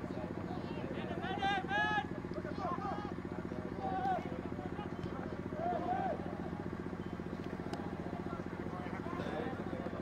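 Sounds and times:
faint crowd voices: 0:00.0 - 0:10.0
small engine running: 0:00.0 - 0:10.0.

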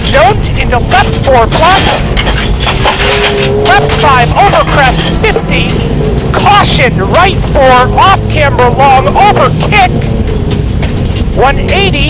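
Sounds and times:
person talking: 0:00.0 - 0:02.1, 0:03.6 - 0:10.0, 0:11.4 - 0:12.0
car engine accelerating: 0:00.0 - 0:12.0.

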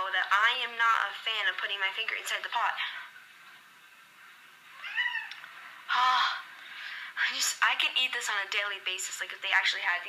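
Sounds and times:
cat meowing: 0:04.7 - 0:05.4.

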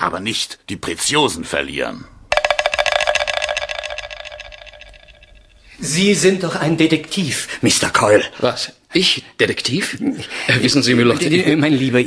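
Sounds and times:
rapid even rattle of strikes: 0:02.3 - 0:05.6
faint ringing tone: 0:02.3 - 0:05.7.

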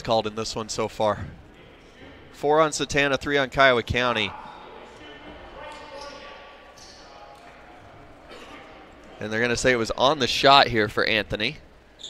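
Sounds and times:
distant echoing voices: 0:00.8 - 0:10.5.

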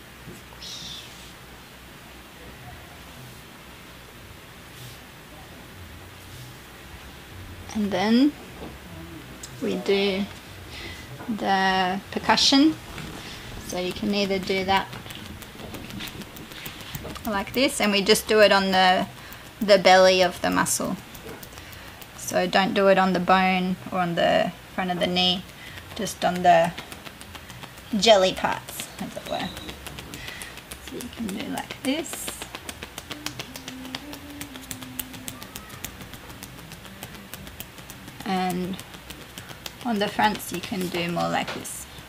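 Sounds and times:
faint low hum: 0:00.0 - 0:42.0
hands patting on body: 0:12.2 - 0:22.7, 0:24.9 - 0:42.0.

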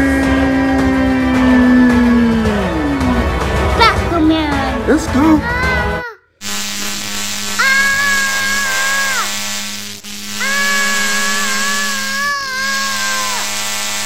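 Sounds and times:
electronic buzzing drone: 0:06.4 - 0:14.0
long wailing tones: 0:07.2 - 0:14.0.

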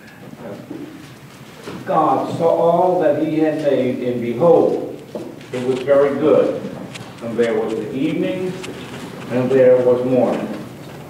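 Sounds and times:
person reading aloud: 0:01.8 - 0:10.8.

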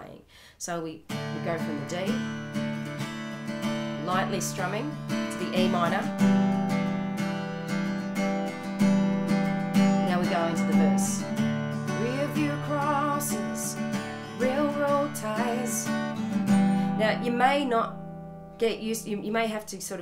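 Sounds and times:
acoustic guitar strummed softly: 0:01.1 - 0:18.8.

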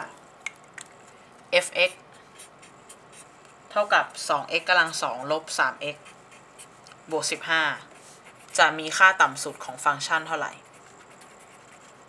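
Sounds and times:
person speaking: 0:01.5 - 0:10.8
marker pen scratching on paper: 0:01.8 - 0:12.0.

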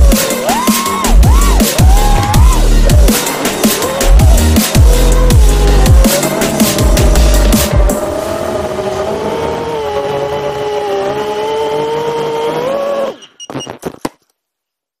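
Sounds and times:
electronic music with heavy bass: 0:00.0 - 0:09.9
quadcopter motors whining: 0:00.0 - 0:13.4.

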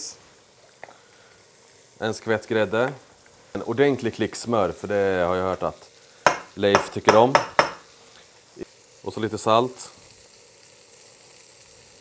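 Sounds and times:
meatballs sizzling in a pan: 0:00.0 - 0:12.0.

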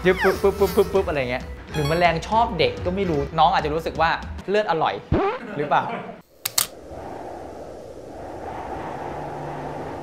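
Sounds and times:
sharp clicks: 0:06.4 - 0:06.8
low hum: 0:06.4 - 0:10.0
low rumbling drone: 0:06.8 - 0:10.0.

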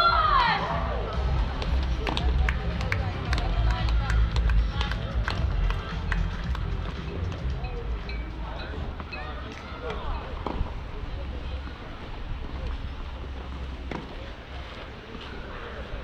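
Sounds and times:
faint distant voices: 0:00.0 - 0:16.0
steady low rumble: 0:00.3 - 0:09.0.

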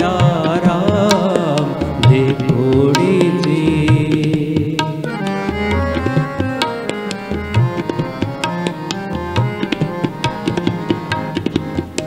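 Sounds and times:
harmonium held notes: 0:00.0 - 0:12.0
tabla strokes: 0:00.0 - 0:12.0.

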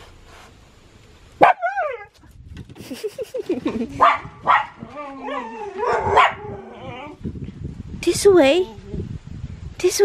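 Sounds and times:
dog barking: 0:01.4 - 0:02.0, 0:04.0 - 0:06.6
dog whining and yipping: 0:01.4 - 0:02.2, 0:04.8 - 0:07.2.

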